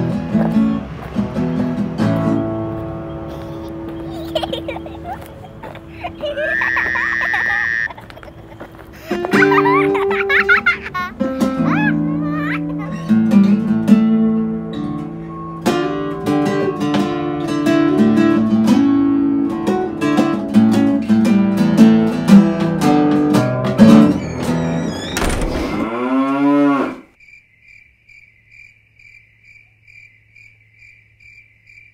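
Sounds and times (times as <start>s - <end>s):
acoustic guitar picking: 0.0s - 6.3s, 9.1s - 25.0s
crickets chirping: 27.1s - 31.9s.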